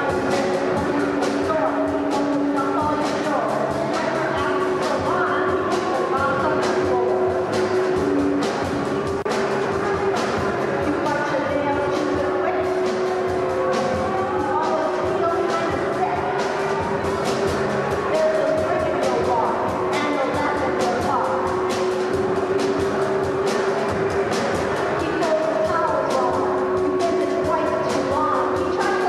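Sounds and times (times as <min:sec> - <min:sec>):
electric bass: 0:00.0 - 0:28.7
drum kit and cymbals: 0:00.0 - 0:29.0
woman singing: 0:25.0 - 0:29.0.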